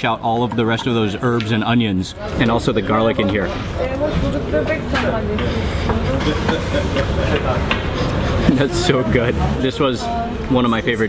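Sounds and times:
road traffic rumble: 2.6s - 11.0s.

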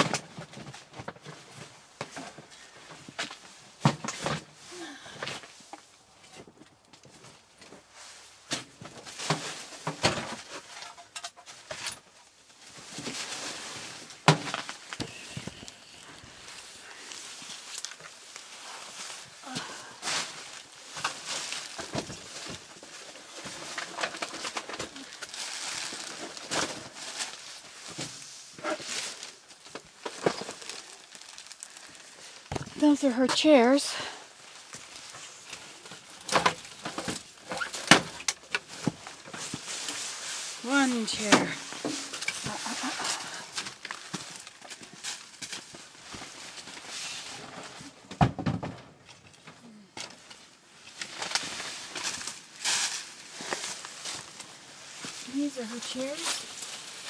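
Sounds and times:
knocks and thuds of clutter: 0.0s - 4.6s, 8.5s - 11.9s, 14.2s - 15.6s, 21.0s - 22.7s, 32.5s - 33.4s, 47.6s - 49.1s
plastic sheeting rustling: 12.3s - 48.0s, 50.8s - 57.0s.

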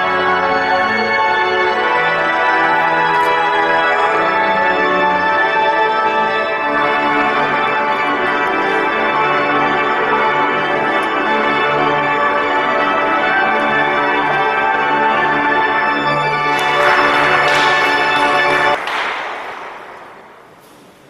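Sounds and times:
pipe organ playing chords: 0.0s - 20.7s.

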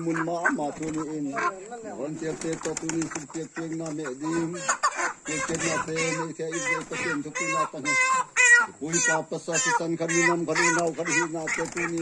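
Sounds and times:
chickens clucking and squawking: 0.0s - 12.0s
wings flapping: 0.6s - 1.2s, 2.1s - 4.2s, 5.0s - 7.3s, 10.5s - 12.0s.

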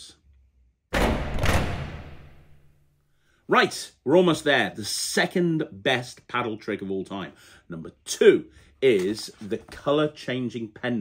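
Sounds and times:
heavy impact hit: 1.0s - 2.7s.

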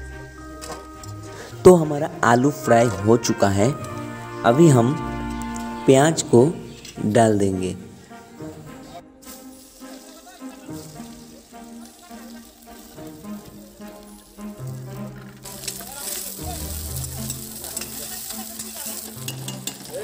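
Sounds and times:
onions sizzling in oil: 9.2s - 20.0s
ladle stirring: 15.4s - 20.0s.

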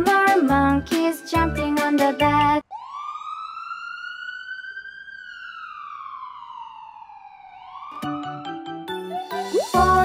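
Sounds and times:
ambulance siren wail: 2.6s - 9.8s.

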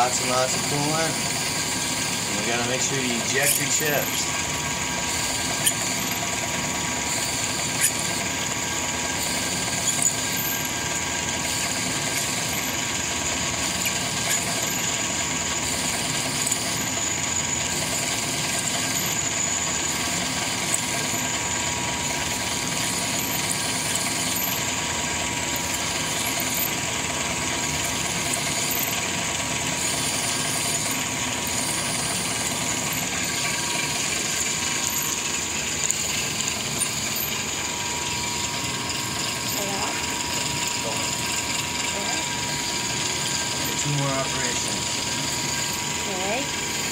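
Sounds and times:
lathe drilling metal: 0.0s - 46.9s.

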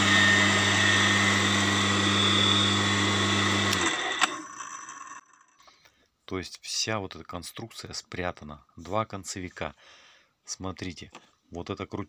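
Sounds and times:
garden shredder motor humming: 0.0s - 5.5s.

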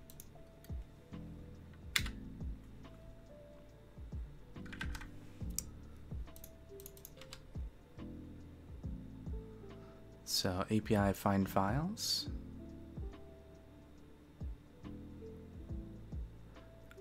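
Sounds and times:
soft background music: 0.0s - 17.0s
typing on computer keyboard: 4.6s - 5.6s, 6.3s - 7.5s.

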